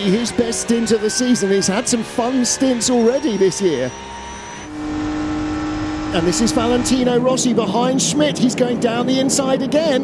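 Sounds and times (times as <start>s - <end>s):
race car engine at constant revs: 0.0s - 8.7s.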